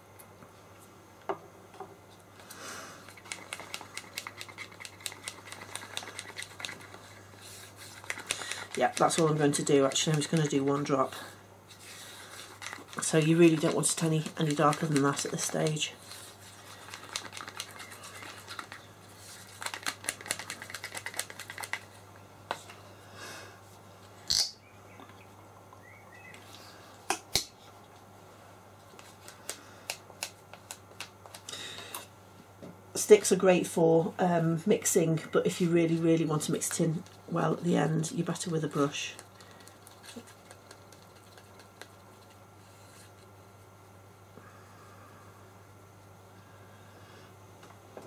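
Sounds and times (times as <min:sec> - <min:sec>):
brush tapping plastic cup: 0:07.8 - 0:10.9, 0:12.6 - 0:15.8
stick scraping in plastic cup: 0:11.7 - 0:18.8.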